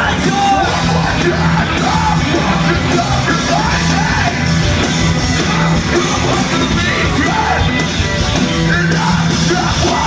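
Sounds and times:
rock band playing: 0:00.0 - 0:10.0
vocalist singing and yelling: 0:00.0 - 0:10.0.

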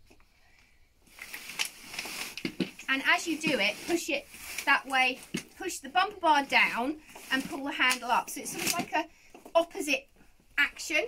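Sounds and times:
seat fabric rustling: 0:01.2 - 0:09.0.

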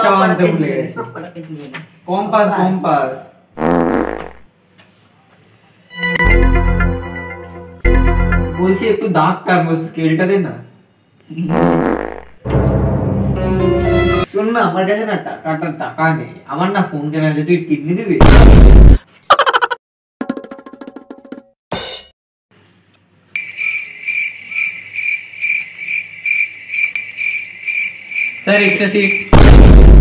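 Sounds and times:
comedy fart sound effect: 0:03.6 - 0:04.5, 0:11.5 - 0:12.4
crickets chirping: 0:23.3 - 0:29.3.

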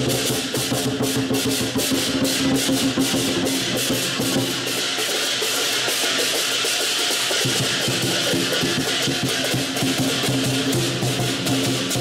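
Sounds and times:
hand cymbals clashing: 0:00.0 - 0:12.0
large drum beating: 0:00.0 - 0:12.0.

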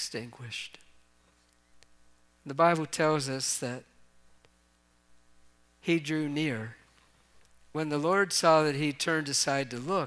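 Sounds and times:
faint electrical hum: 0:00.0 - 0:10.0
man's voice: 0:02.5 - 0:03.9, 0:05.8 - 0:06.8, 0:07.8 - 0:10.0.

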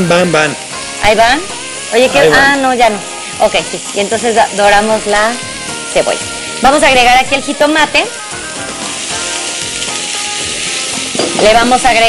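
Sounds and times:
background music: 0:00.0 - 0:12.0
food sizzling in a pan: 0:00.0 - 0:12.0.

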